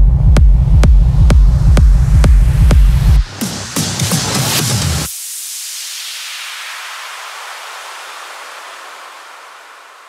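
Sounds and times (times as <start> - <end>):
synthesized white-noise wash: 1.7 - 10.0.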